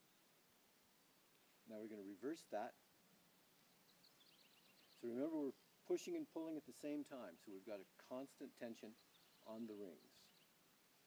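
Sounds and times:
faint high bird trill: 3.6s - 5.8s, 8.8s - 10.6s.

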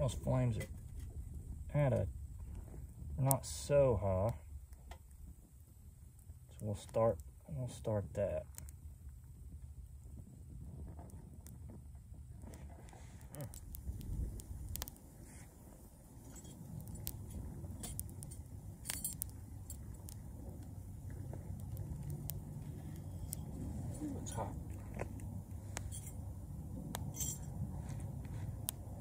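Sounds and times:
low rumble: 0.0s - 6.6s, 7.2s - 29.0s
sticks clicking and crackling: 12.4s - 15.1s, 16.3s - 26.2s
metal clinks: 17.8s - 19.9s, 27.1s - 27.5s.

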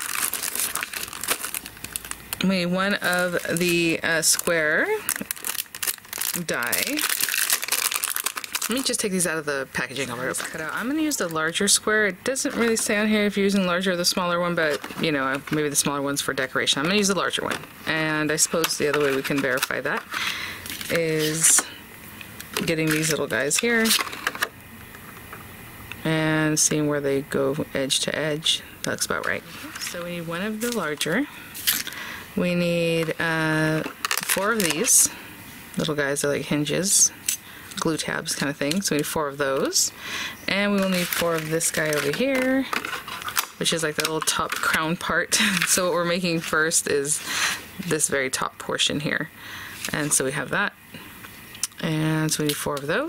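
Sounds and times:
plastic packets crinkling: 0.0s - 11.6s, 12.4s - 21.7s, 22.4s - 24.6s, 29.1s - 32.1s, 32.8s - 35.2s, 40.5s - 46.6s.

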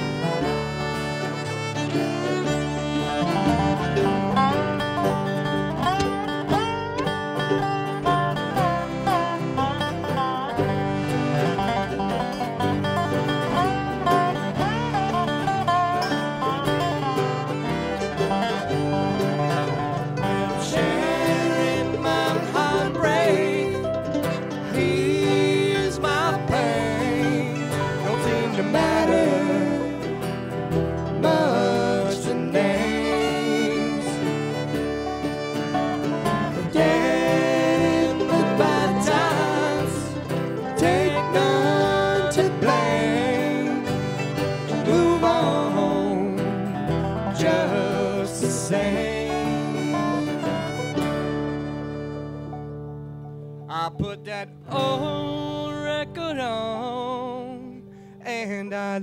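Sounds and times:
slide dobro playing: 0.0s - 57.7s
fiddle playing: 0.0s - 58.0s
acoustic guitar: 0.0s - 59.0s
upright bass: 0.0s - 59.0s.

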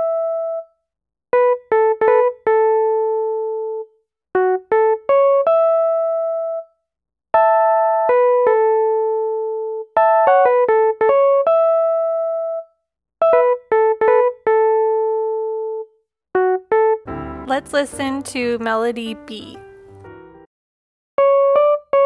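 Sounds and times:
electric piano melody: 0.0s - 0.7s, 1.3s - 6.7s, 7.4s - 20.5s, 21.2s - 22.0s.

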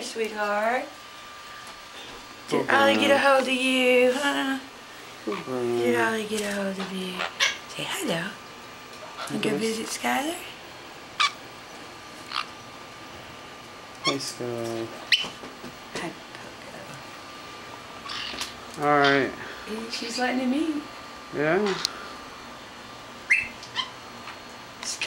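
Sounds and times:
parrot chirps: 7.2s - 7.6s, 11.2s - 11.4s, 12.2s - 12.6s, 15.1s - 15.4s, 18.0s - 18.5s, 23.2s - 24.0s.

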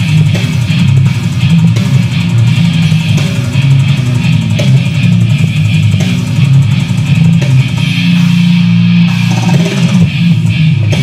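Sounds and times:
heavy guitar and drums: 0.0s - 11.0s.

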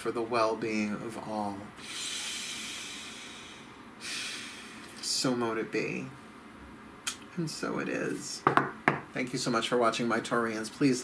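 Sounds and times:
man breathing: 1.8s - 5.0s.

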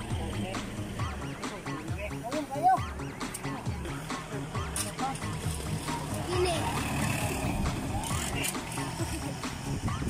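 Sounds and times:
vehicle engine and tyres passing: 0.0s - 1.6s, 3.8s - 9.9s
background song with vocals: 0.0s - 10.0s.

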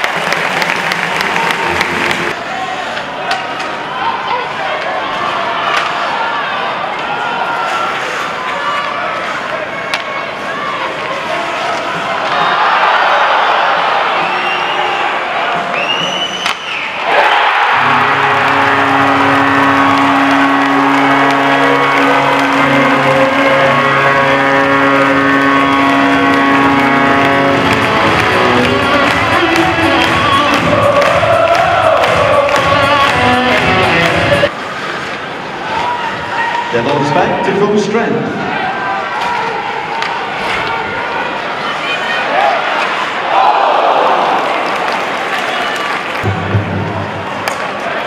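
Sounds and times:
crowd cheering: 0.0s - 48.0s
loud music over loudspeakers: 17.9s - 34.5s.

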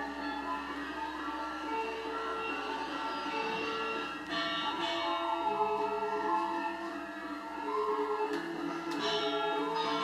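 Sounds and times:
gamelan music: 0.0s - 10.0s.

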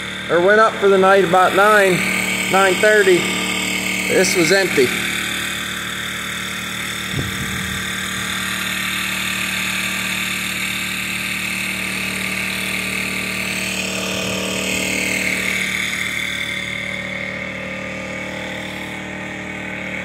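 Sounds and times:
portable generator running: 0.0s - 20.0s
low bump: 7.0s - 8.7s.

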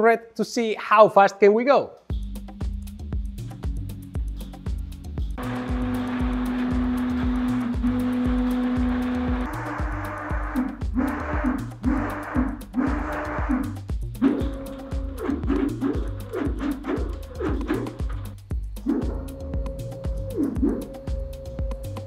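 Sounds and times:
background music with beat: 2.0s - 22.0s
stepper motor spinning: 5.4s - 19.4s.

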